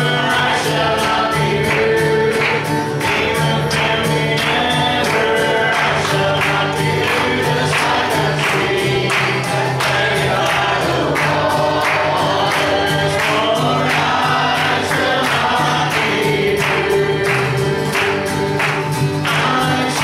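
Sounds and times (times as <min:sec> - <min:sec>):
acoustic guitar strumming: 0:00.0 - 0:20.0
man singing: 0:00.0 - 0:20.0
voices singing along: 0:00.0 - 0:20.0.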